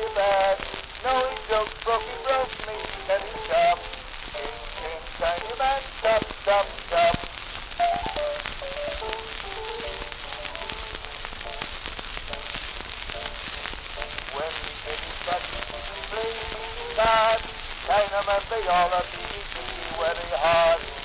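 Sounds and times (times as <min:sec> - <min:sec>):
person singing: 0:00.0 - 0:11.7, 0:14.2 - 0:21.0
surface hiss and crackle: 0:00.0 - 0:21.0.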